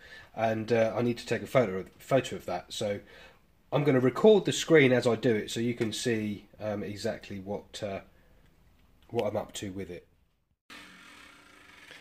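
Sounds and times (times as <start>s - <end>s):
faint steady hiss: 0.0s - 10.1s.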